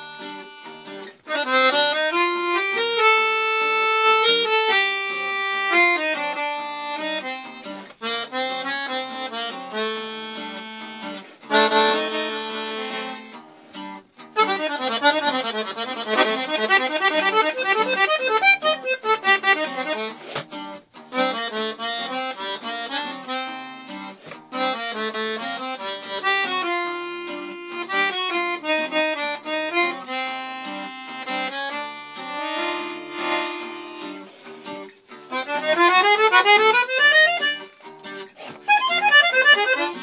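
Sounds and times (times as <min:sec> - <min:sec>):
accordion playing: 0:00.0 - 0:40.0
acoustic guitar: 0:00.0 - 0:40.0.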